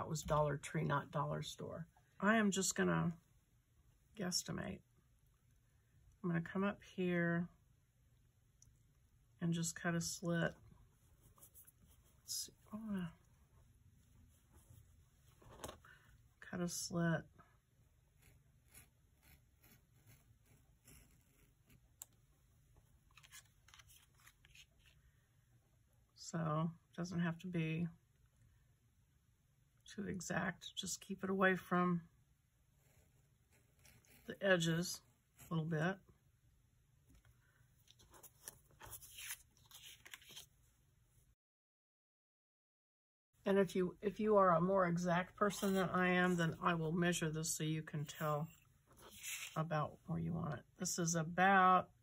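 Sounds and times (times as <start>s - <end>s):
craft knife cutting card: 38.1s - 40.5s, 49.1s - 49.6s.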